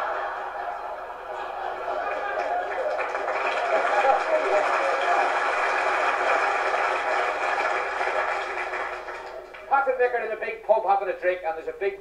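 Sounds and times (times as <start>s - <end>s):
audience laughing: 0.0s - 9.3s
audience applauding: 0.0s - 9.9s.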